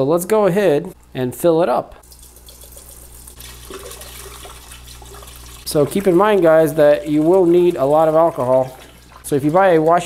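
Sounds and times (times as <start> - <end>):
liquid pouring and splashing: 2.0 - 10.0.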